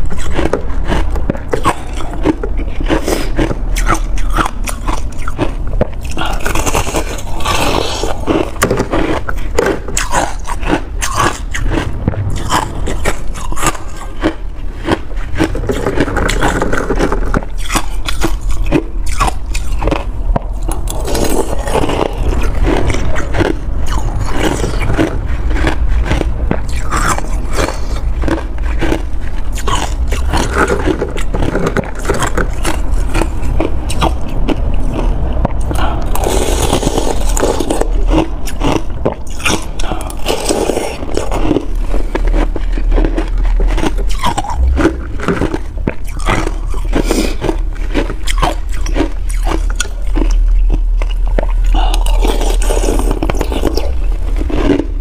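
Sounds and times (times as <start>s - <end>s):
crunching ice chunks: 36.1s - 54.9s.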